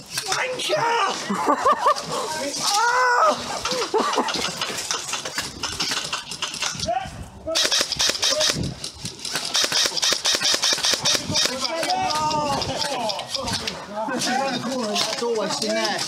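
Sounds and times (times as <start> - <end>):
players shouting: 0.2 - 4.3, 11.0 - 16.0
airsoft rifles firing bursts: 7.6 - 13.6.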